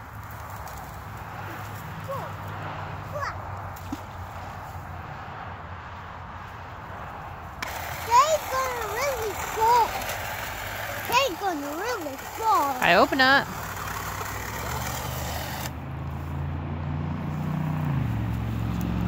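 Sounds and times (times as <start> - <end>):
outdoor background hiss: 0.0 - 16.0.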